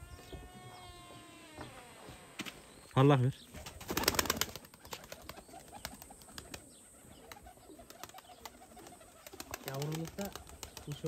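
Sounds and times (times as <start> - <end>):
pigeon wings flapping: 3.6 - 6.7, 7.3 - 11.0.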